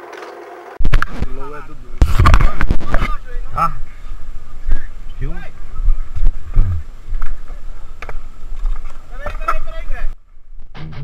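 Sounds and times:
wind on microphone: 0:03.8 - 0:09.0.

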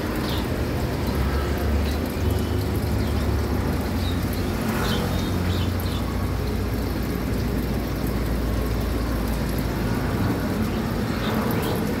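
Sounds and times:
aquarium equipment humming: 0:00.0 - 0:12.0
hissing water wash: 0:00.0 - 0:12.0.

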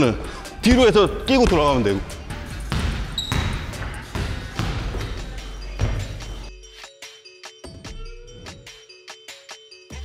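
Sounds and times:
basketball bouncing on wooden floor: 0:02.7 - 0:06.2
high squeak: 0:03.2 - 0:03.6.

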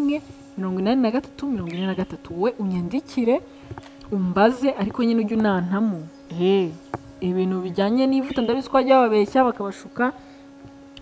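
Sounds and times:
woman speaking into headset: 0:00.0 - 0:03.5, 0:04.1 - 0:10.3
faint steady hum: 0:00.0 - 0:11.0.

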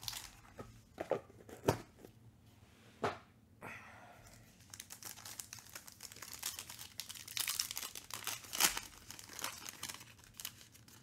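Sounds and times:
foil wrapper tearing and crinkling: 0:00.0 - 0:00.4, 0:04.6 - 0:11.0.

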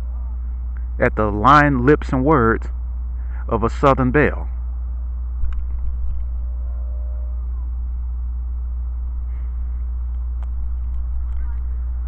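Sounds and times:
steady low drone: 0:00.0 - 0:12.0.

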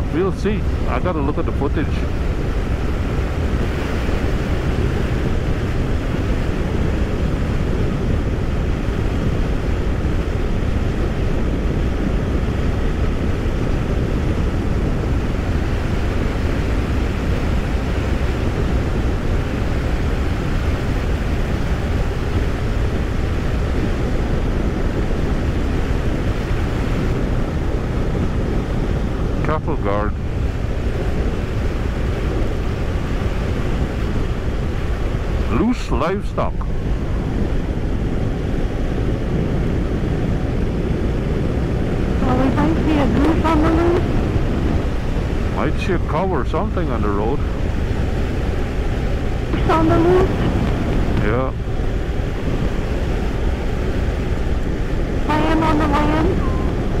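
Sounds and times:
wind buffeting microphone: 0:00.0 - 0:35.7, 0:36.3 - 0:57.0.

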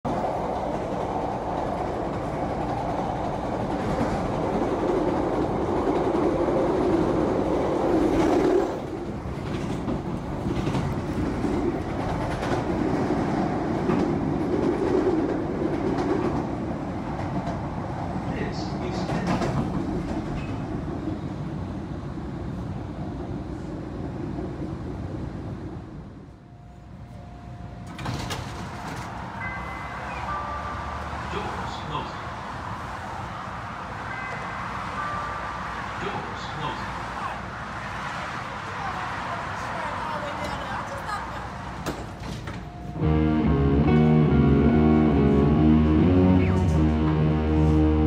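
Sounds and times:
train rumbling on rails: 0:00.0 - 0:48.0.

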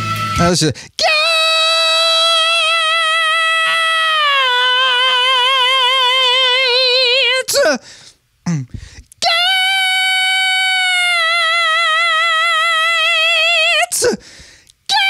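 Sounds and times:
short vocal sounds: 0:08.4 - 0:09.3.

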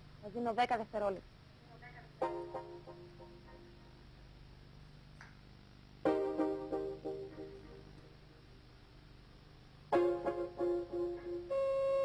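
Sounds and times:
long held electronic tone: 0:10.1 - 0:12.0.

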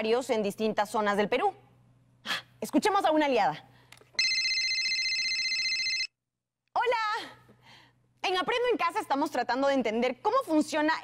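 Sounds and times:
electronic telephone ring tone: 0:04.2 - 0:06.2.

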